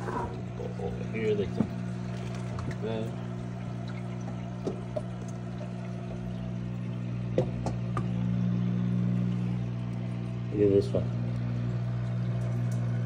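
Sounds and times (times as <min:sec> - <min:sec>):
pump hum: 0:00.0 - 0:13.0
water pouring into tank: 0:00.1 - 0:13.0
small clicks and splashes: 0:00.8 - 0:08.2, 0:09.1 - 0:13.0.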